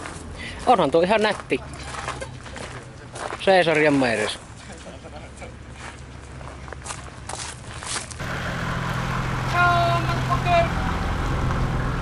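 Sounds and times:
car engine idling: 8.2 - 12.0.

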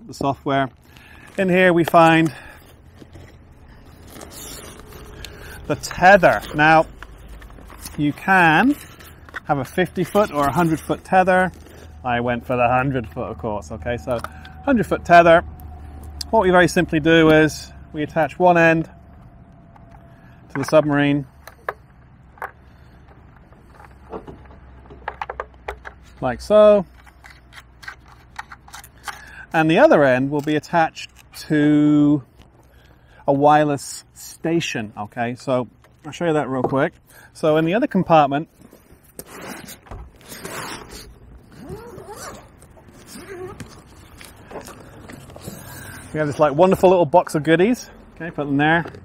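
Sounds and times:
steady low rumble: 0.0 - 25.0
zipper being pulled open: 2.9 - 7.9, 38.7 - 46.2.

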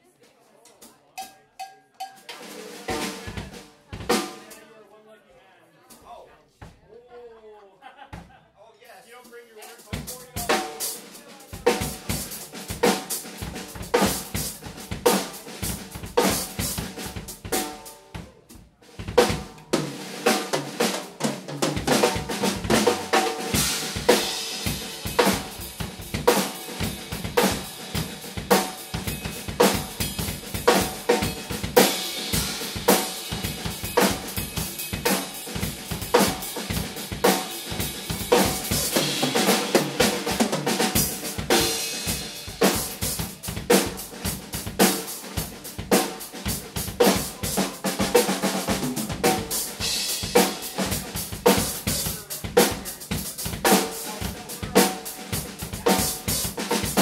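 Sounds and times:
drum kits playing a groove: 2.0 - 4.6, 9.1 - 57.0.

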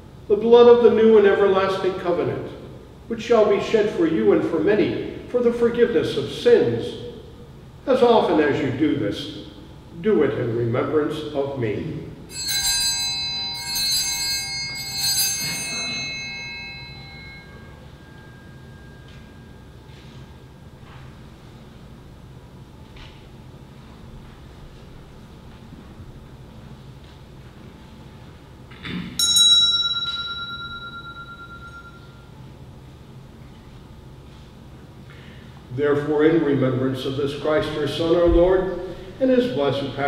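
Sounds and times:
altar bells ringing: 12.3 - 20.4, 29.2 - 32.6.

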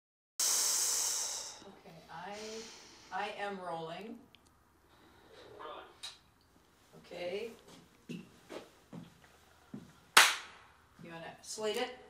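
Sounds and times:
clapperboard clap: 10.2 - 10.6.

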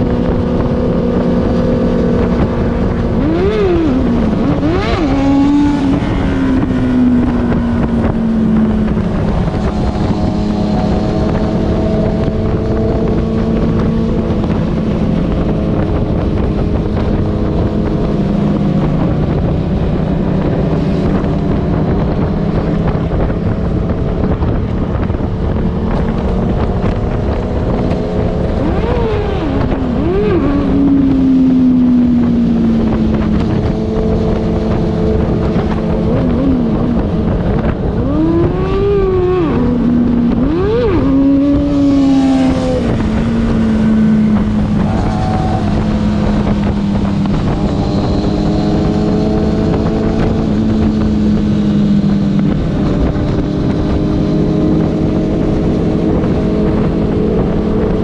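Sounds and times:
motorcycle engine running: 0.0 - 58.0
wind rushing over microphone: 0.0 - 58.0.

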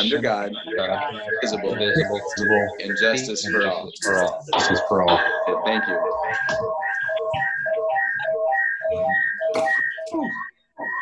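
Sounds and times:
pulsing feedback whistle: 0.0 - 11.0.

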